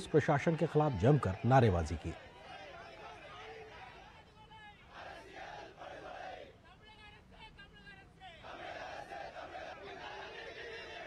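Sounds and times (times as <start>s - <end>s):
crowd shouting slogans: 0.0s - 6.7s, 8.2s - 11.0s.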